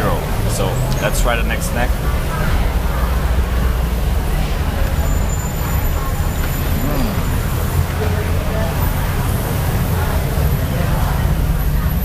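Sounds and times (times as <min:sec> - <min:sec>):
low rumble of road traffic: 0:00.0 - 0:12.0
faint voice: 0:06.0 - 0:08.6.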